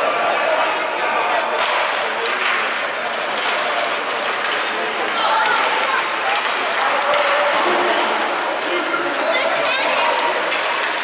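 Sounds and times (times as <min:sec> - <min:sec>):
indistinct voices: 0:00.0 - 0:11.0
hockey stick crack: 0:01.6 - 0:08.1, 0:09.8 - 0:11.0.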